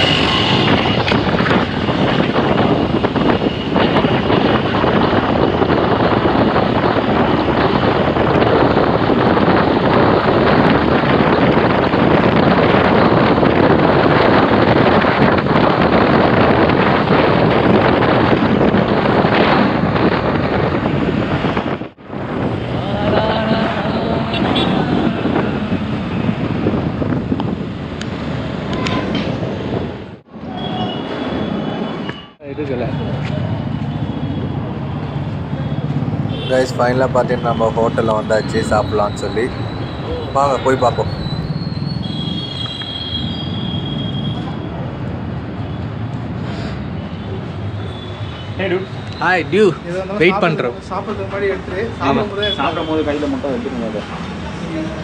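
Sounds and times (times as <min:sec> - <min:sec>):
traffic noise: 0:00.0 - 0:55.0
wind rushing over microphone: 0:00.0 - 0:55.0.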